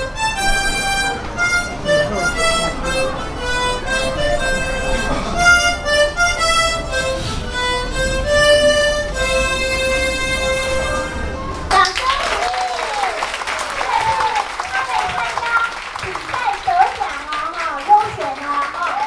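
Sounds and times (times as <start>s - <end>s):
harmonicas playing a march: 0.0s - 11.7s.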